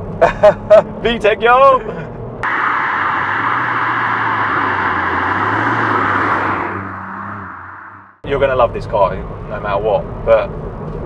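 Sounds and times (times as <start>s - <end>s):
car driving past at speed: 2.4s - 8.2s.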